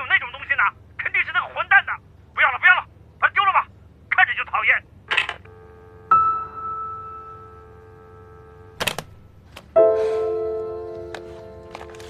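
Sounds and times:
voice on telephone line: 0.0 - 6.0
telephone line tone: 5.4 - 8.8
telephone click: 8.8 - 9.2.

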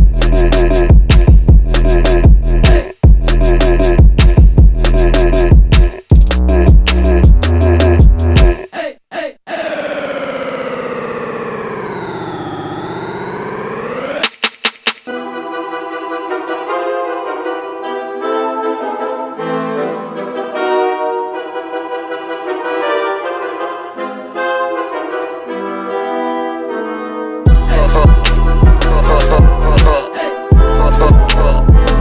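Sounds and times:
electronic brass-like music: 0.0 - 8.5, 15.1 - 32.0.

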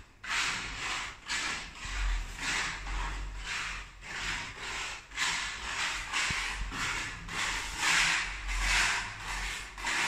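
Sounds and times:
steel spatula scraping a wall: 0.0 - 10.0.

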